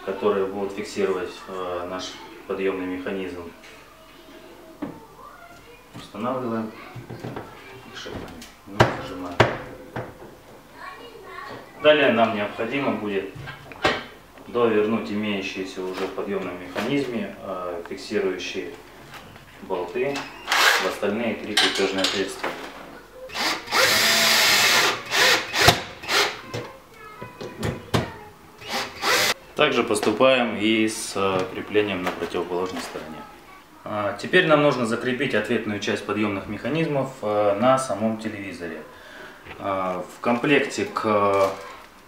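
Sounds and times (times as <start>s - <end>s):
cordless drill driving screws: 20.4s - 20.9s, 23.3s - 26.4s, 28.6s - 29.4s.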